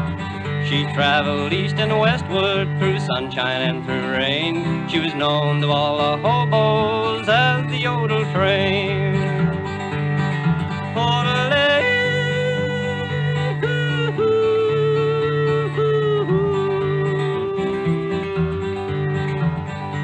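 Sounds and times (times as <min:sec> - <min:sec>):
strummed acoustic guitar: 0:00.0 - 0:20.0
man yodeling: 0:00.7 - 0:09.6, 0:11.0 - 0:19.4.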